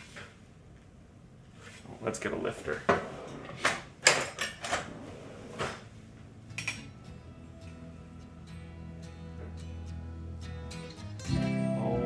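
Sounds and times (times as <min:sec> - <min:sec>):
drawer sliding and bumping: 0:02.9 - 0:05.9
kitchen utensils clattering: 0:06.6 - 0:06.9.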